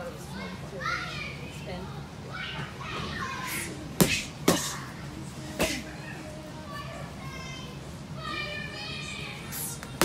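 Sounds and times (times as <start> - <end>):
children calling out: 5.8 - 10.0.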